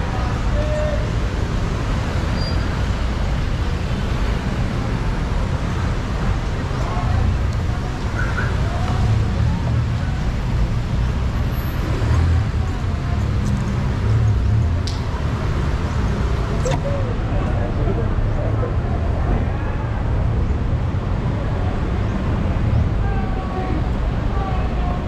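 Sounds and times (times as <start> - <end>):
road traffic rumble: 0.0 - 25.0
faint voices: 6.1 - 10.9, 11.8 - 25.0.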